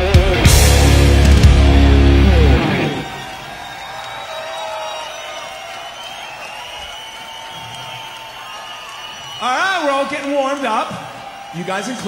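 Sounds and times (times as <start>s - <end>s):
ringing guitar tones: 0.0s - 3.0s
rock band playing loudly: 0.0s - 3.3s.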